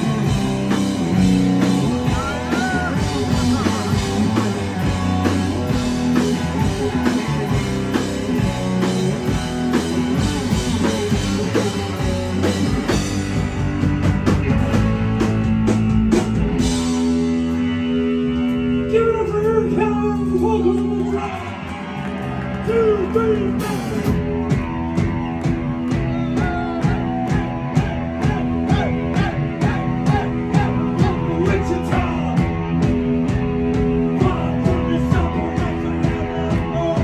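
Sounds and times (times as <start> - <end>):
live rock band playing: 0.0 - 37.0
shouted vocals: 1.8 - 4.7, 25.9 - 32.6.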